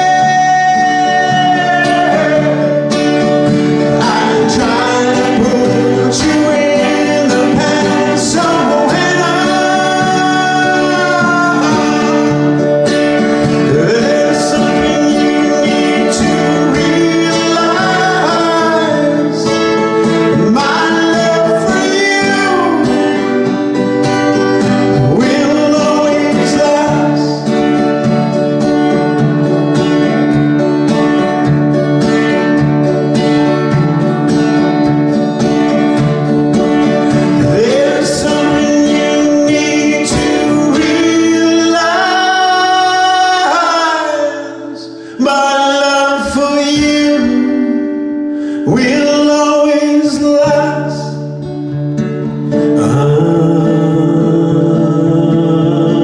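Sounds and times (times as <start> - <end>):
man singing: 0.0 - 28.1, 36.6 - 51.5, 52.5 - 56.0
acoustic guitar strumming: 0.0 - 56.0.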